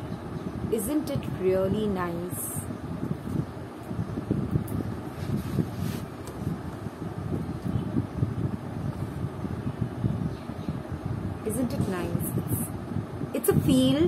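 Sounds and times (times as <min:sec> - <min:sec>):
low background rumble: 0:00.0 - 0:14.0.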